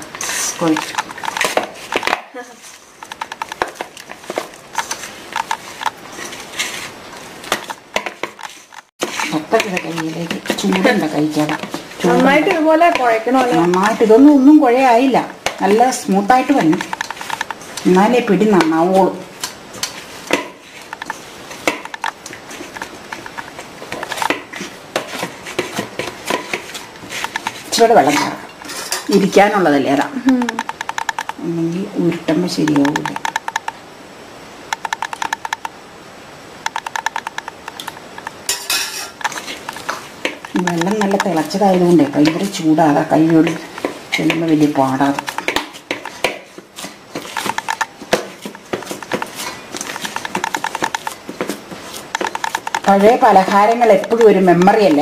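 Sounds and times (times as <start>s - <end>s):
hands rubbing flour in steel bowl: 0.0s - 2.8s, 4.2s - 7.0s, 8.4s - 14.4s, 40.5s - 55.0s
person's voice: 0.5s - 1.0s, 9.2s - 16.9s, 27.7s - 28.5s, 29.1s - 30.6s, 31.4s - 33.2s, 40.5s - 43.6s, 44.2s - 45.3s, 52.9s - 55.0s
fingers scraping flour in steel bowl: 8.2s - 14.3s.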